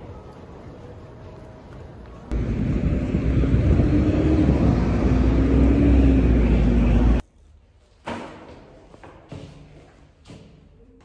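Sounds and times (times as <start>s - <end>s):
vehicle rumble: 2.3s - 7.2s.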